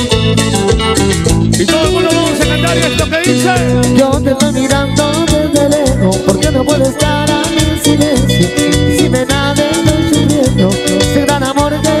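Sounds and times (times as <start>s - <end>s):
latin dance band music: 0.0s - 12.0s.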